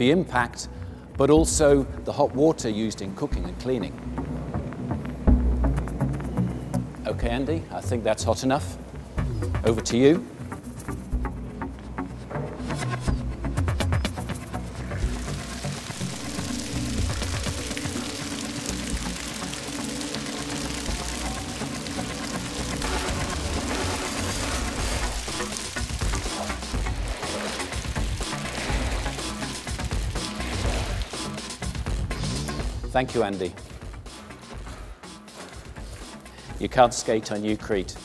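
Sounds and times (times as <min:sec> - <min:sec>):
background music: 0:00.0 - 0:38.0
water gushing and splashing: 0:14.2 - 0:32.9
squeegee pushing water: 0:15.0 - 0:31.9.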